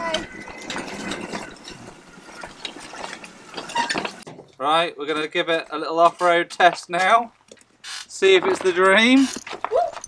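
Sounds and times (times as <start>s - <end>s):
metal frame rattling: 0.0s - 4.5s
go-kart rolling over gravel: 0.0s - 7.2s.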